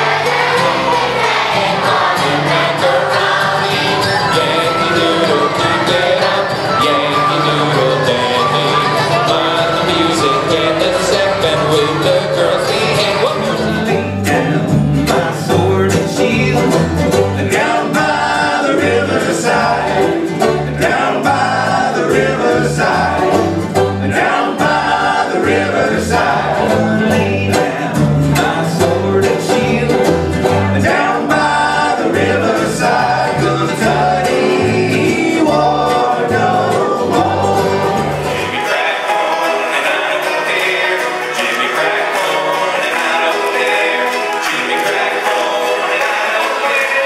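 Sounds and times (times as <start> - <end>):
string band playing: 0.0 - 47.0
upright bass notes: 0.0 - 47.0
voices singing in harmony: 0.0 - 47.0.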